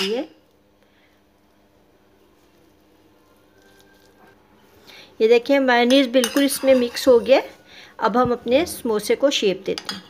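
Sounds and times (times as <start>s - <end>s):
spoon stirring in glass bowl: 5.9s - 7.5s.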